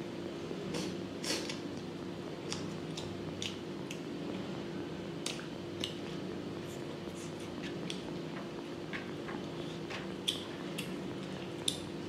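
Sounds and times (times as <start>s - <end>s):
chewing food: 5.2s - 11.9s.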